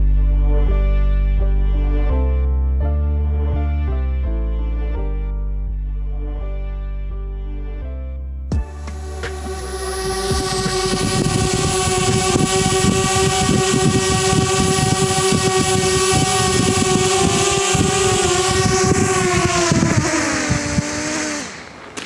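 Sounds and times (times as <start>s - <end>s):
drone propellers whining: 8.6s - 22.0s
wind buffeting microphone: 9.7s - 22.0s.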